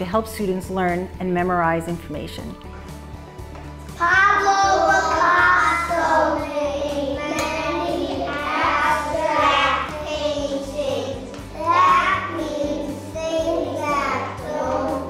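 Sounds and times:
background music: 0.0s - 15.0s
children chanting together: 4.0s - 15.0s.

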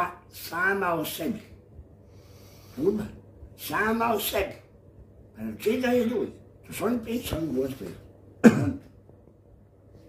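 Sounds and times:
man coughing: 8.4s - 8.9s.

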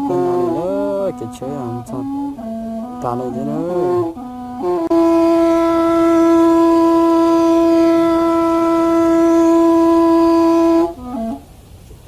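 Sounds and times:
wind instrument playing: 0.0s - 11.6s.

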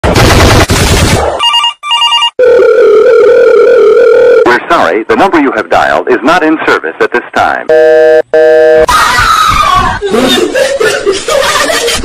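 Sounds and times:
steady held telephone tone: 1.4s - 4.4s, 7.7s - 8.9s
telephone ringing: 1.4s - 4.5s.

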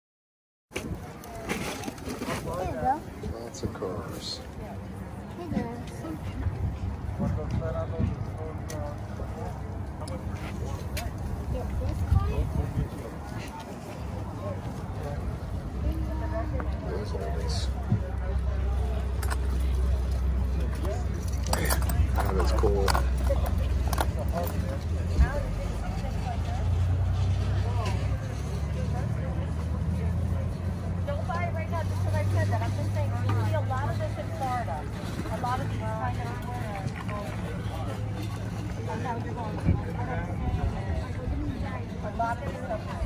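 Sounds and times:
people talking: 0.8s - 6.6s, 7.2s - 43.0s.

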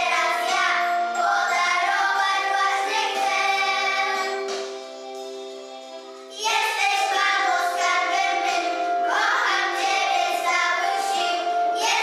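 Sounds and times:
children singing: 0.0s - 12.0s
instrumental accompaniment: 0.0s - 12.0s.

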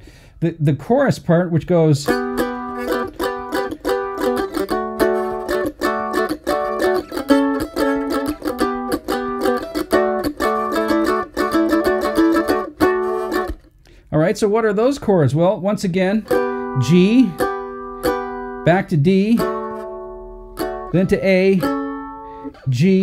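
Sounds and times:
mandolin strumming chords: 1.7s - 14.9s, 15.7s - 23.0s.

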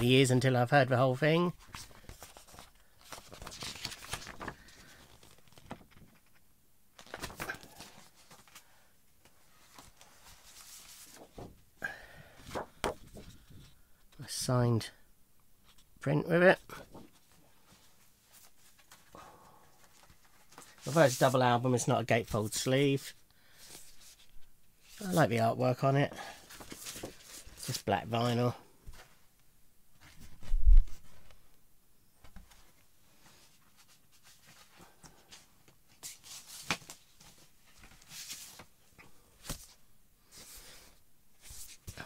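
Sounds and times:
vinyl record sleeve handling: 1.6s - 6.4s, 7.0s - 8.6s.

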